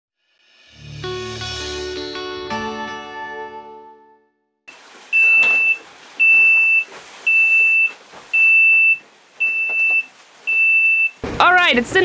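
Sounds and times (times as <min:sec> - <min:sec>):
electronic alarm beeping: 0:05.2 - 0:11.2.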